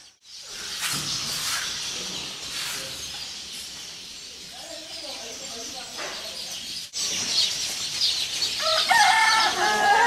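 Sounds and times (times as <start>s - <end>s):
rooster crowing: 8.6s - 10.0s.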